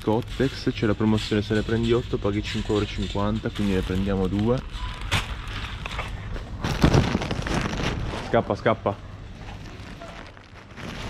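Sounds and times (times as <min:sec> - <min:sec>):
plastic wrapping rustling: 0:00.0 - 0:11.0.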